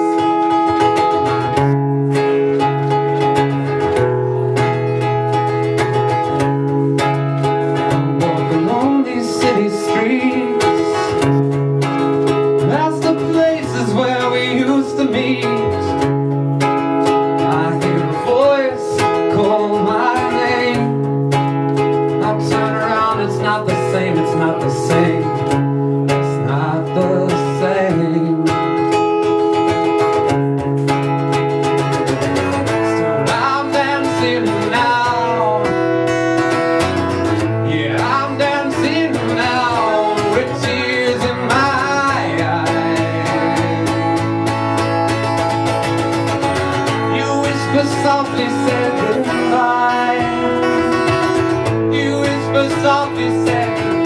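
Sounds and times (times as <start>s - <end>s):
guitar playing chords: 0.0s - 54.0s
man singing: 7.8s - 11.5s, 12.6s - 16.2s, 17.1s - 21.3s, 22.0s - 29.0s, 32.1s - 36.5s, 37.4s - 44.8s, 46.8s - 54.0s.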